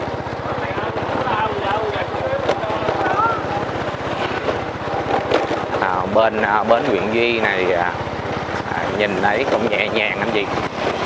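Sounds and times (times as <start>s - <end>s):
small motorbike engine running: 0.0s - 11.0s.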